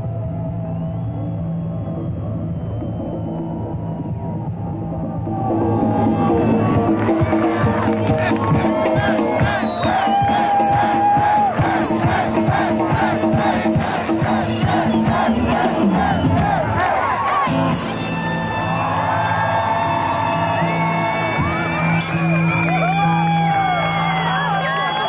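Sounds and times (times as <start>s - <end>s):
crowd shouting and cheering: 0.0s - 25.0s
live band playing a bolero: 5.3s - 16.5s.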